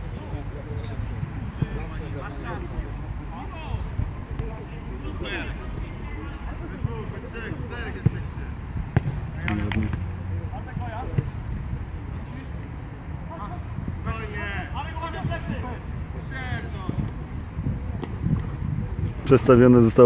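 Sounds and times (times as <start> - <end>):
ball being kicked: 8.9 - 10.0
players calling out: 13.3 - 18.1.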